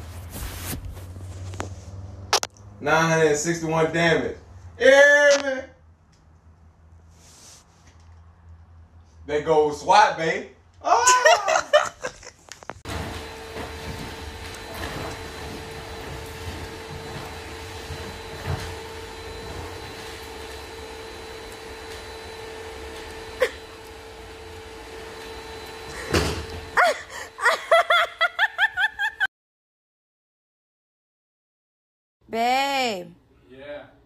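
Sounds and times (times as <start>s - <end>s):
vacuum cleaner humming: 12.9s - 29.3s.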